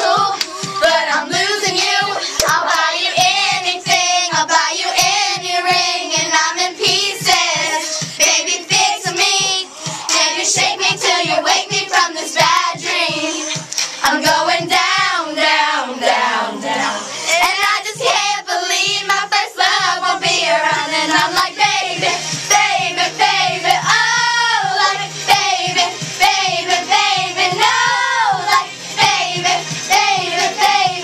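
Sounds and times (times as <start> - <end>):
girls singing loudly together: 0.0 - 31.0
pop song with steady beat: 0.0 - 31.0.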